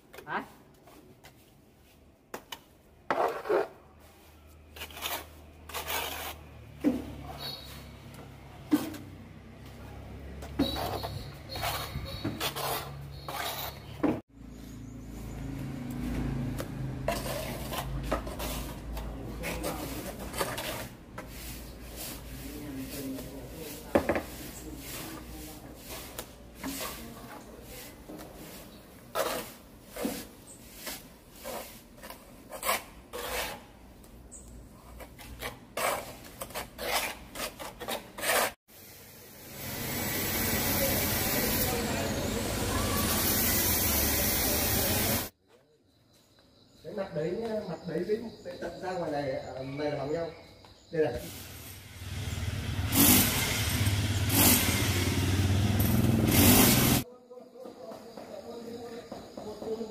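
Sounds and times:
trowel scraping wet mortar: 3.1 - 8.0, 8.6 - 9.2, 10.5 - 14.2, 17.0 - 33.8, 34.8 - 38.6.

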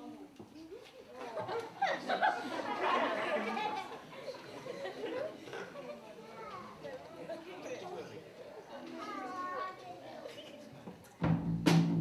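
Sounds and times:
murmur of voices: 0.0 - 11.3.

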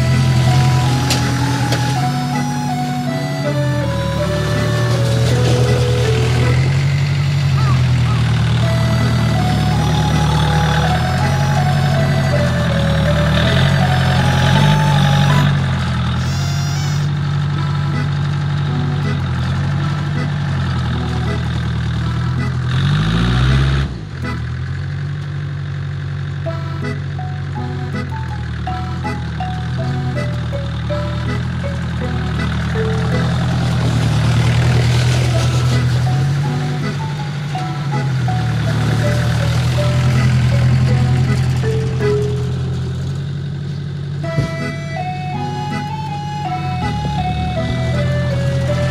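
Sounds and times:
background music stepping melody: 0.0 - 7.4, 8.5 - 16.3, 17.4 - 22.7, 26.4 - 43.0, 44.1 - 48.9
small tractor engine running: 0.0 - 48.9.

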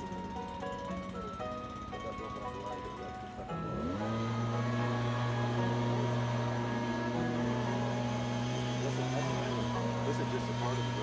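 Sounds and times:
background music: 0.0 - 11.0
low steady engine drone: 0.0 - 11.0.

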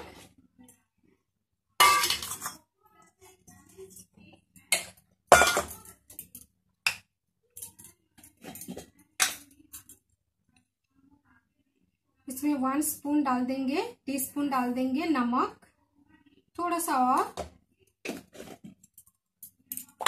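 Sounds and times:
steel kitchenware clinking: 1.8 - 2.6, 4.7 - 6.4.

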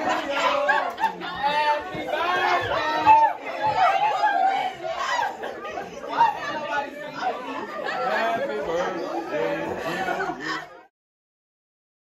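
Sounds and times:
students chattering: 0.0 - 10.9.

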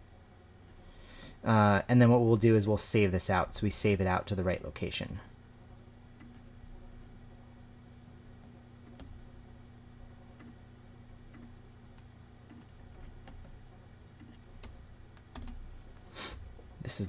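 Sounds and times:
faint low hum: 0.0 - 17.0
keyboard keys tapping: 14.2 - 15.6.

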